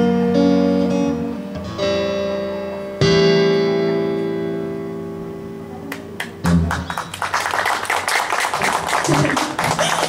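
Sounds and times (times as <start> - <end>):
guitar chord: 0.0 - 6.6
audience applause: 6.2 - 10.0.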